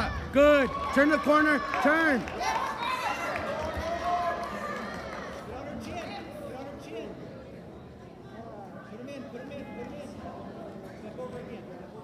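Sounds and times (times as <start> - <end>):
spectators cheering and calling out: 0.0 - 6.4
crowd chatter: 0.0 - 12.0.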